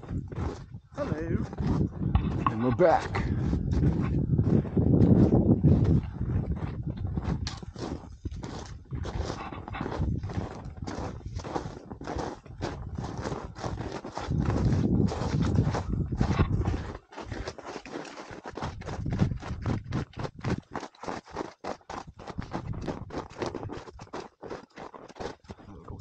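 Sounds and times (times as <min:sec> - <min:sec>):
wind gusts on microphone: 0:00.0 - 0:17.4, 0:18.6 - 0:20.6, 0:22.1 - 0:23.7
footsteps crunching in snow: 0:00.0 - 0:25.7.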